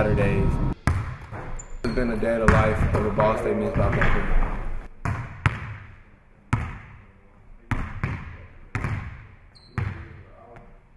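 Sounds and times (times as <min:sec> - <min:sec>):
basketball bouncing on gym floor: 0:00.8 - 0:05.9, 0:06.5 - 0:07.0, 0:07.7 - 0:10.2.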